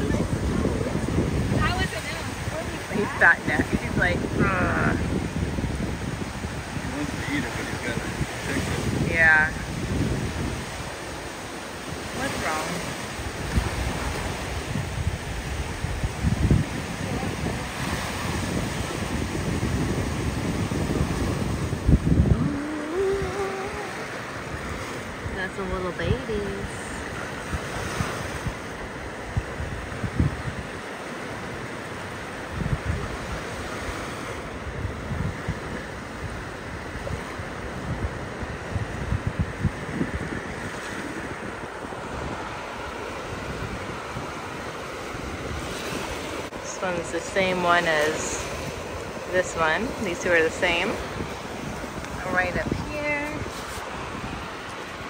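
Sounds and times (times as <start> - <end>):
small waves washing on sand: 0.0 - 55.0
wind gusting on microphone: 0.0 - 55.0.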